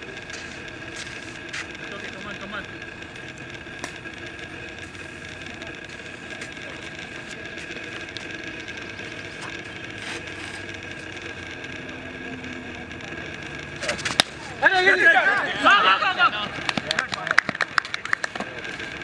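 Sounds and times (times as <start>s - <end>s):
open-air background noise: 0.0s - 19.0s.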